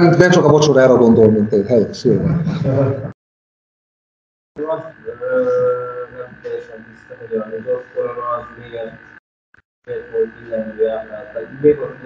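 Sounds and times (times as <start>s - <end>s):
person talking over video call: 0.0s - 2.5s, 4.6s - 9.0s, 9.9s - 12.0s
high-pitched hum: 4.6s - 9.2s, 9.9s - 12.0s.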